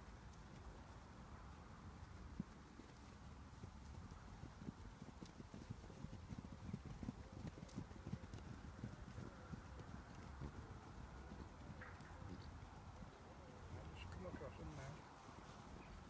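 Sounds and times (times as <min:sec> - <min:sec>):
horses trotting over grass: 0:00.0 - 0:16.0.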